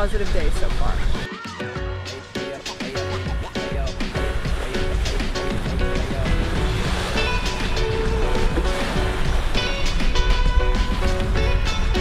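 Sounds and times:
background music with held notes: 0.0s - 12.0s
water rushing along boat hull: 2.5s - 12.0s.

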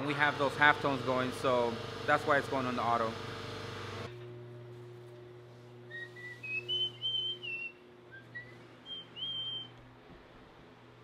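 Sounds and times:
person whistling high notes: 5.9s - 9.8s.

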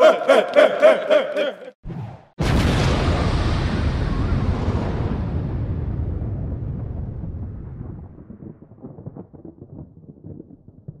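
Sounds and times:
scattered crackles: 7.1s - 11.0s.

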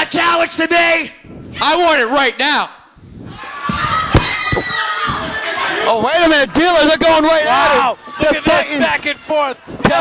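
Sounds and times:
crowd noise in a hall: 0.0s - 10.0s.

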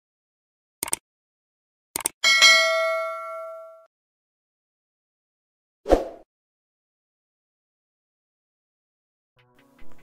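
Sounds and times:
bright bell ding: 2.2s - 3.9s.

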